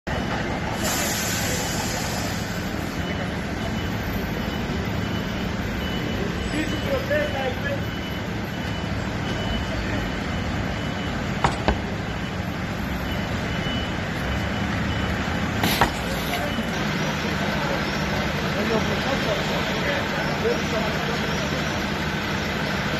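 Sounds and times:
fire engines idling: 0:00.1 - 0:22.9
faint high-pitched beep: 0:01.9 - 0:15.3.

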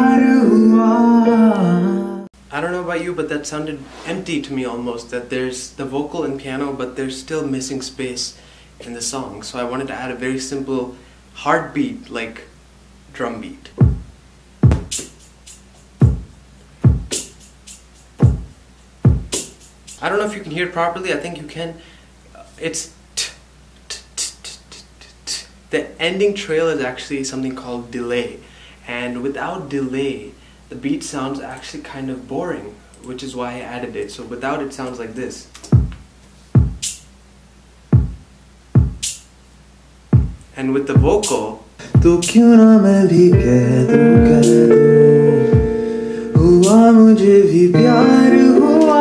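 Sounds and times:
drum machine beat: 0:13.8 - 0:20.0, 0:35.7 - 0:36.0, 0:36.6 - 0:37.0, 0:37.9 - 0:38.2, 0:38.8 - 0:39.2, 0:40.2 - 0:40.4, 0:41.0 - 0:42.4, 0:43.3 - 0:44.9, 0:45.5 - 0:46.9.

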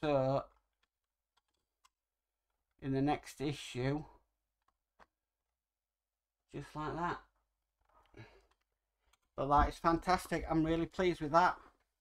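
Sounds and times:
faint clicks of model parts: 0:00.4 - 0:02.8, 0:04.4 - 0:05.6, 0:07.6 - 0:09.4
man speaking: 0:02.8 - 0:04.2, 0:06.5 - 0:07.4, 0:09.4 - 0:11.7.

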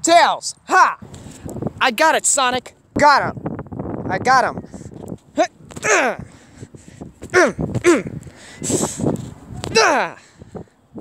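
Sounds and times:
man grunting cries: 0:05.8 - 0:06.3, 0:07.3 - 0:08.2, 0:09.7 - 0:10.2.

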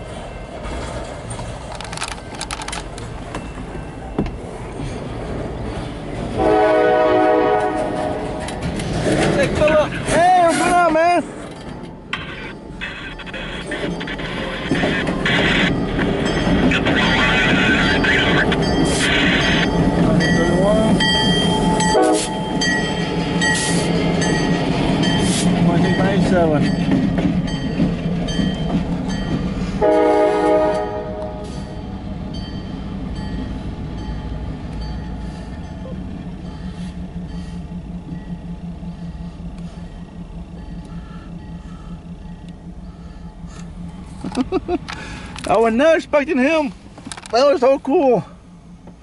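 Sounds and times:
train wheels rolling: 0:00.0 - 0:06.5, 0:07.4 - 0:49.0
diesel locomotive engines rumbling: 0:00.0 - 0:49.0
train horn blast: 0:06.3 - 0:08.6, 0:21.9 - 0:22.4, 0:29.8 - 0:31.7.

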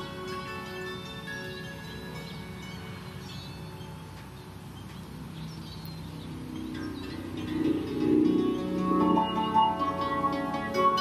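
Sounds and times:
bird chirps: 0:01.7 - 0:11.0.

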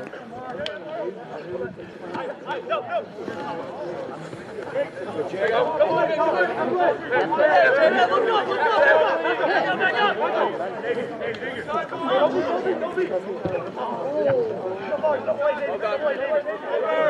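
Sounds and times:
crowd shouting and calling: 0:00.0 - 0:17.0.

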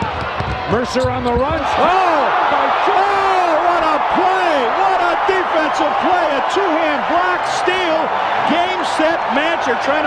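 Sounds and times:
crowd cheering loudly: 0:00.0 - 0:10.0
commentator shouting excitedly: 0:01.6 - 0:10.0.

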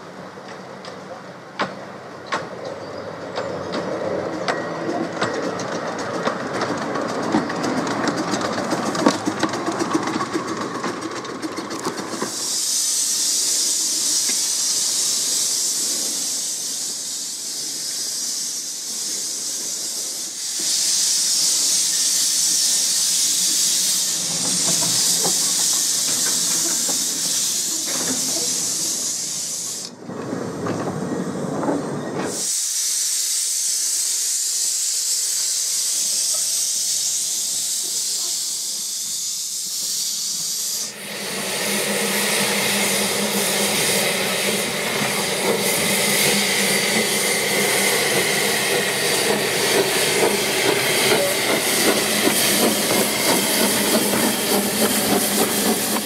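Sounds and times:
steam locomotive venting steam: 0:00.0 - 0:56.0.

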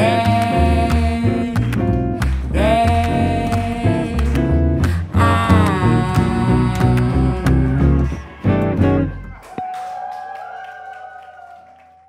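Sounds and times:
clapping and cheers: 0:00.0 - 0:12.0.

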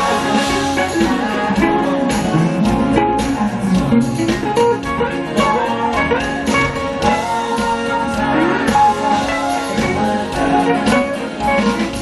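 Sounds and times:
electric guitar single notes: 0:00.0 - 0:12.0
jazz band playing: 0:00.0 - 0:12.0.

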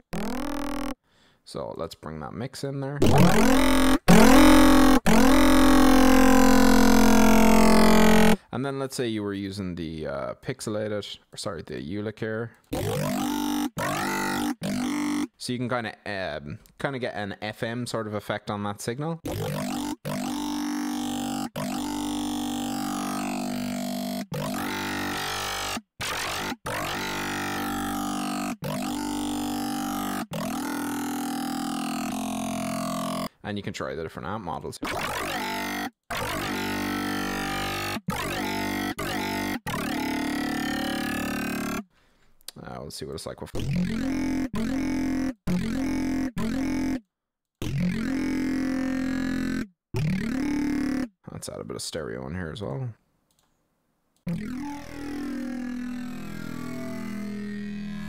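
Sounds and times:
distorted synthesizer notes: 0:00.0 - 0:01.0, 0:03.0 - 0:08.4, 0:12.7 - 0:15.3, 0:19.2 - 0:33.3, 0:34.8 - 0:41.9, 0:43.6 - 0:47.0, 0:47.6 - 0:51.1, 0:54.3 - 0:58.0.

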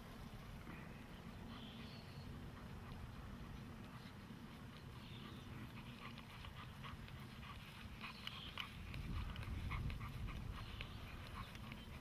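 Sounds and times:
wind rumble on microphone: 0:00.0 - 0:12.0
dog panting: 0:01.4 - 0:12.0.

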